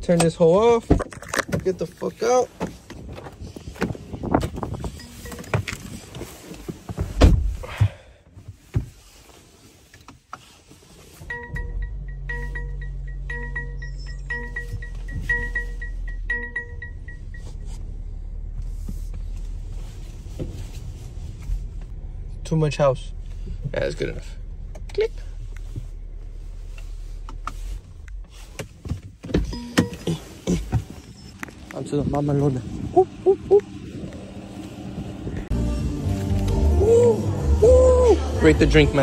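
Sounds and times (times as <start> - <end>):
car running with low hum: 1.0 - 39.0
dashboard warning chime beeping: 4.9 - 5.7, 11.2 - 17.8, 29.4 - 31.4
car door clunks and thud: 6.7 - 9.0.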